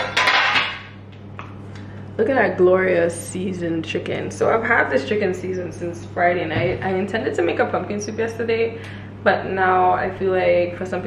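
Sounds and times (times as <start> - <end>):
metal bowl scraping clatter: 0.0 - 0.9
steady low hum: 0.0 - 11.0.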